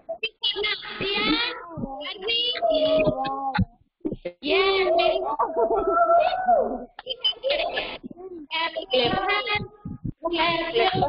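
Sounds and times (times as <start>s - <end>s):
child singing in high voice: 0.3s - 3.6s, 8.6s - 11.0s.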